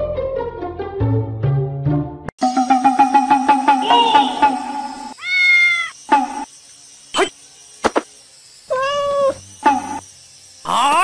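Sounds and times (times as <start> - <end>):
cat meowing: 5.2 - 6.0, 8.7 - 9.4.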